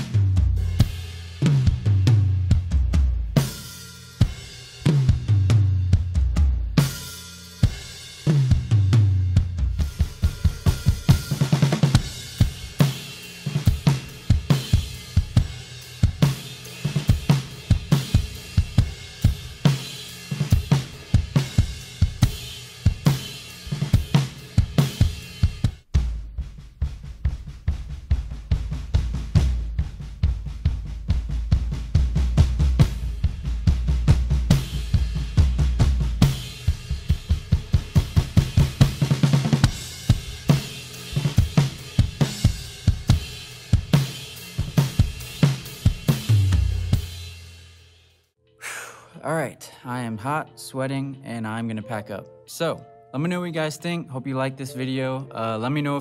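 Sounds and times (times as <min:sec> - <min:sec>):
drum kit groove: 0:00.0 - 0:51.4
tom fills: 0:48.6 - 0:50.9.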